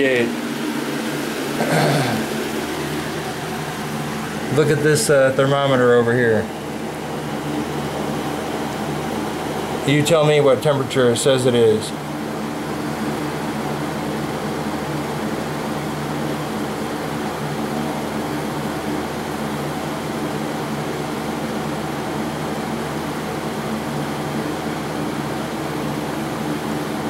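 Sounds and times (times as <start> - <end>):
space heater rushing: 0.0 - 27.0.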